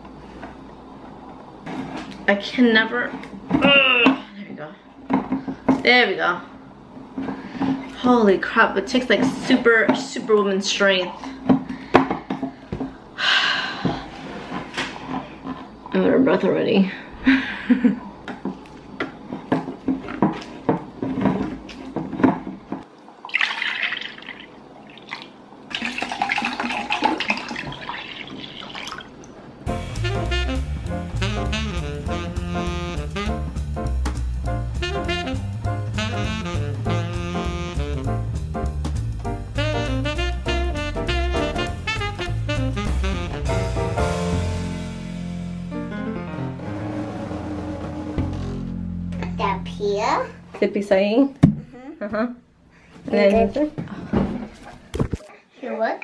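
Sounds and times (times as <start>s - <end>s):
liquid pouring into glass bowl: 23.2s - 29.3s.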